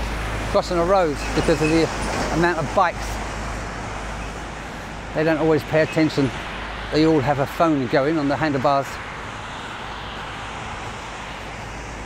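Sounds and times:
traffic on wet road: 0.0s - 12.0s.

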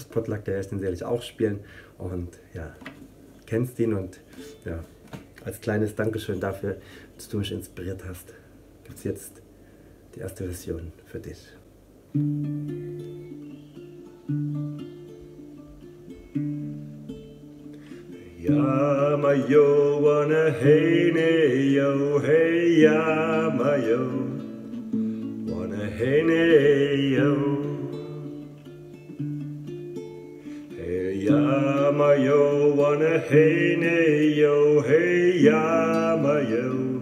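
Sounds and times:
acoustic guitar strumming: 12.0s - 37.0s
man singing: 18.2s - 24.8s, 25.4s - 28.6s, 30.8s - 37.0s.

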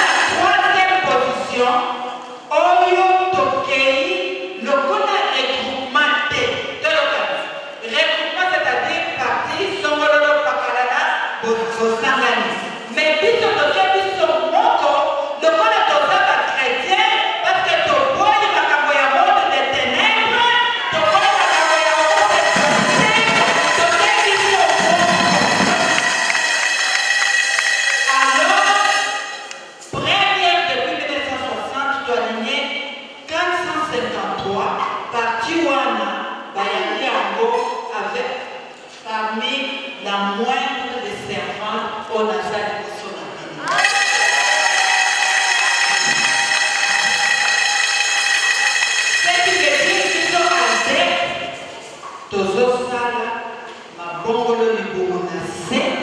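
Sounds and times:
congregation singing and calling: 0.0s - 1.4s, 20.4s - 30.0s, 43.5s - 52.3s
speaking voices: 19.7s - 26.7s, 43.2s - 51.9s.

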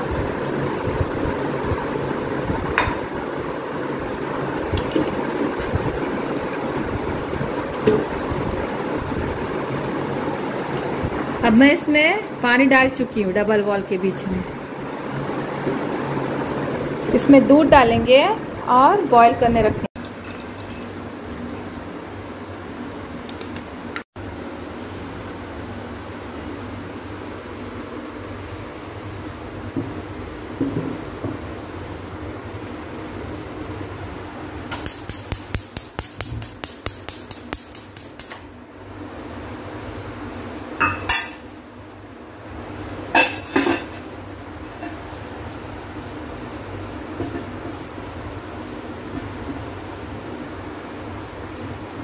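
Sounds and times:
steady background hum: 0.0s - 52.0s
milk pouring into metal pot: 20.0s - 22.0s.

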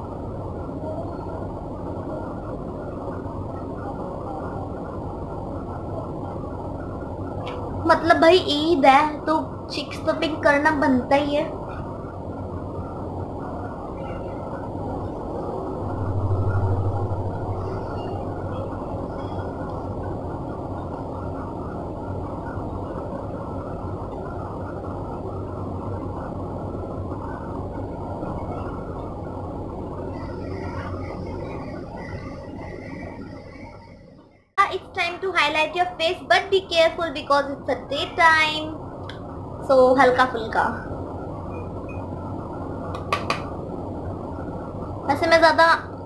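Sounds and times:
low mechanical rumble: 0.0s - 46.0s.

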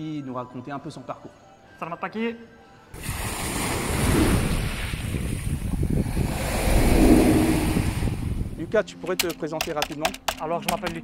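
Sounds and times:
waves washing onto beach: 3.0s - 8.3s
wind buffeting microphone: 3.0s - 8.8s.

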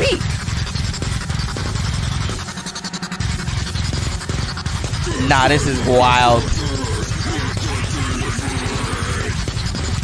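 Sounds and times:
fast pounding drums: 0.0s - 10.0s
heavy distorted guitars: 0.0s - 10.0s.

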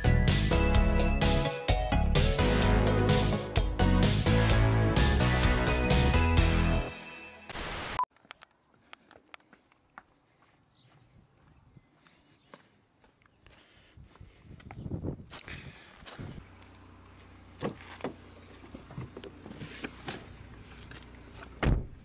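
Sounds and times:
intro music: 0.0s - 8.0s.

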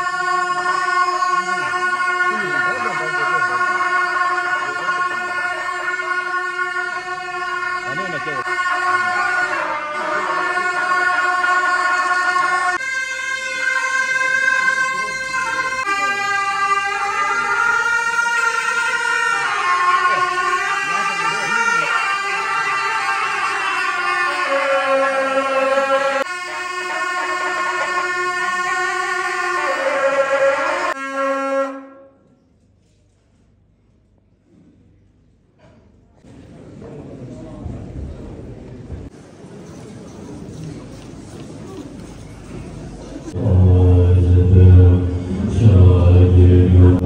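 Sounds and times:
double-reed horns playing long notes: 0.0s - 32.3s, 43.3s - 47.0s
hall ambience: 35.7s - 47.0s.

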